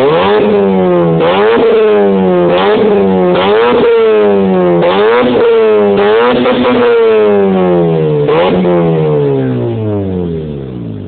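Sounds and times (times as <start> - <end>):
rotary engine revs dropping: 0.0 - 11.0.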